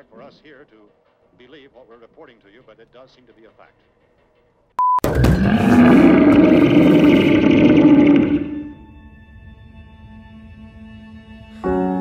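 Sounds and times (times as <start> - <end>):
monster roaring: 5.1 - 8.8.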